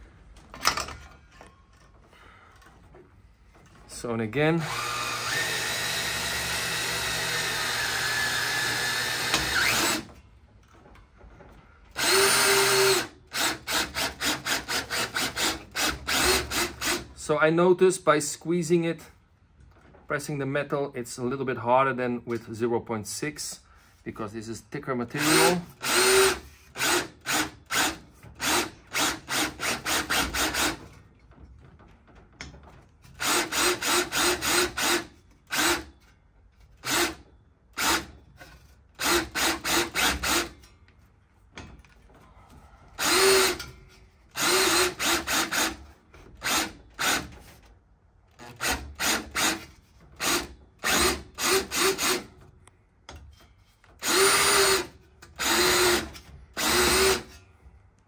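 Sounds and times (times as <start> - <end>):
drill motor spinning in pulses: 4.6 - 10.1, 12.0 - 17.0, 25.2 - 30.8, 43.0 - 43.6, 44.3 - 45.8, 48.5 - 52.3, 54.0 - 57.3.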